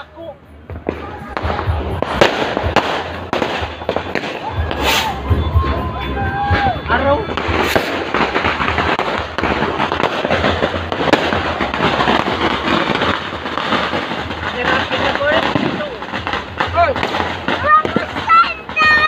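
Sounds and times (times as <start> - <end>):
firecrackers crackling: 0.0 - 19.0
voices calling out: 0.0 - 19.0.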